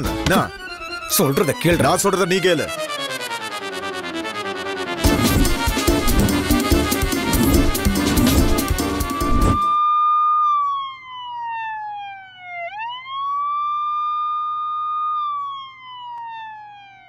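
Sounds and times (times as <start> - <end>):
siren wailing: 5.1 - 17.0.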